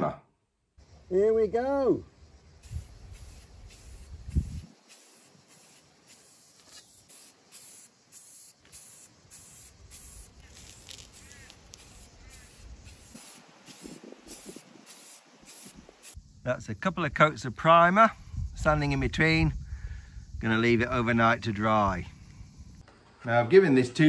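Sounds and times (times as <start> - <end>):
aerosol spray hissing: 2.5 - 16.4.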